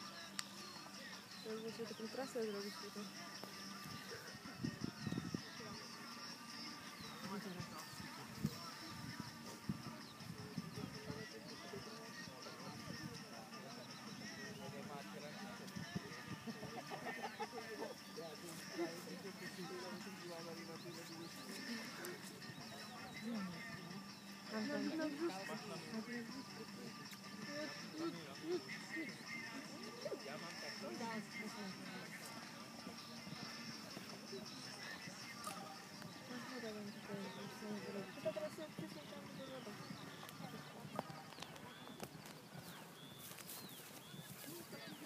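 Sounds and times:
small birds chirping: 0:00.0 - 0:45.0
distant voices: 0:05.4 - 0:45.0.

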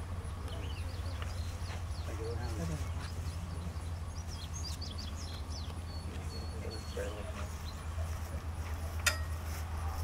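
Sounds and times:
sharp metallic clink: 0:09.0 - 0:09.4.

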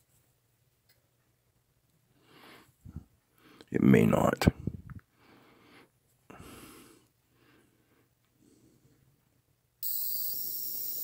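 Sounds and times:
faint breathing: 0:02.1 - 0:03.7, 0:04.5 - 0:09.2
shrill high-pitched tone with hiss: 0:09.8 - 0:11.0.

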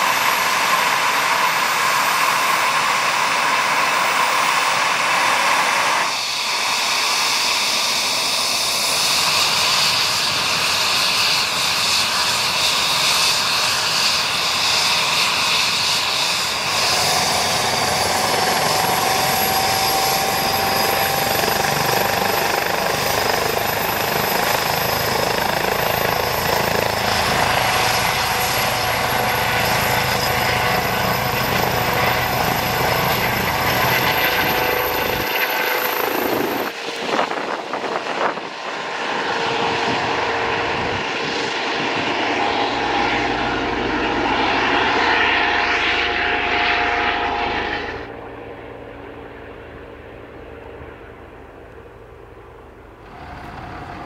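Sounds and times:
helicopter rotor and turbines: 0:00.0 - 0:54.0.

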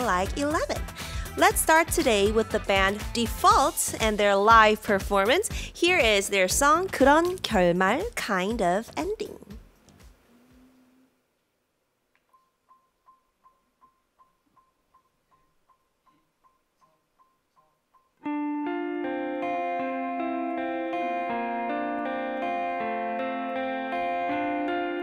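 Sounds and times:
bass guitar: 0:00.0 - 0:07.7, 0:18.2 - 0:25.0
clean electric guitar: 0:18.2 - 0:25.0.

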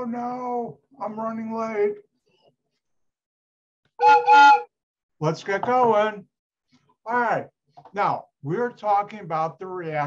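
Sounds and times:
wooden train whistle toots: 0:04.0 - 0:04.7.

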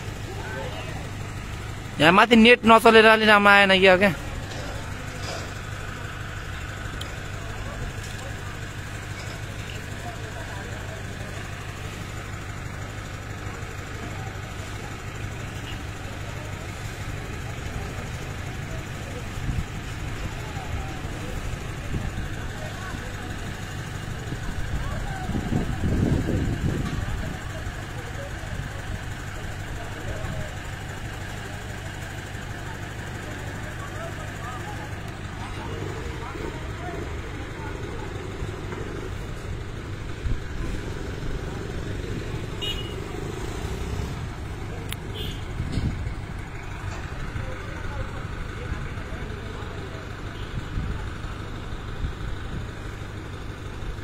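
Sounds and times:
crane engine idling: 0:00.0 - 0:54.0.

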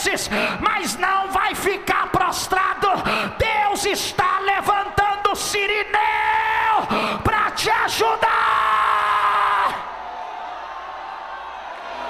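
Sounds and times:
man shouting through loudspeakers: 0:00.0 - 0:09.9
large congregation noise: 0:00.0 - 0:12.0.

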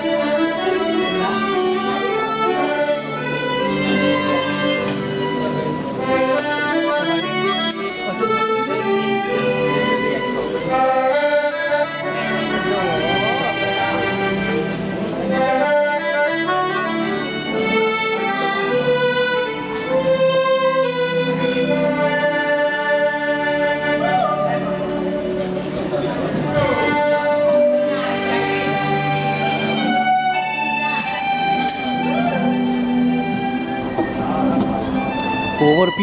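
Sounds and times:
accordion melody: 0:00.0 - 0:36.0.

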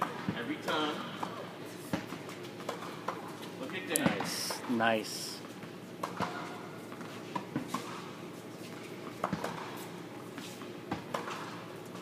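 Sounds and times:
tennis balls struck and bouncing: 0:09.2 - 0:09.8, 0:10.9 - 0:11.6.

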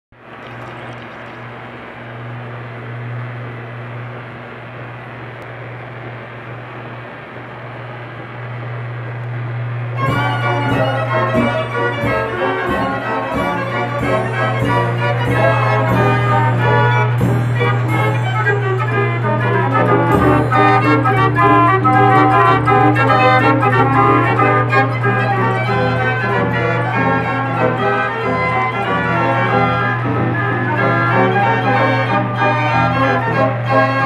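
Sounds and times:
mechanical piano and organ pipes: 0:00.2 - 0:02.8, 0:09.8 - 0:34.0
steady low hum: 0:00.2 - 0:34.0.

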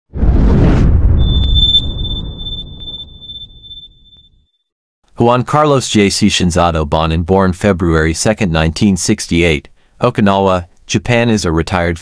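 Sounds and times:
brief whoosh: 0:00.1 - 0:03.6
deep boom: 0:00.1 - 0:03.9
thin high ringing tone: 0:01.2 - 0:04.5.

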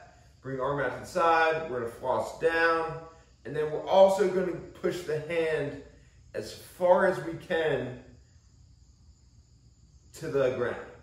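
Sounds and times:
faint high-pitched hiss: 0:00.0 - 0:11.0.

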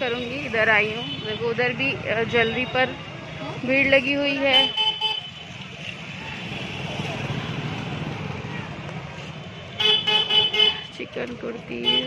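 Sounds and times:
crowd noise: 0:00.0 - 0:12.0
traffic: 0:00.0 - 0:12.0.

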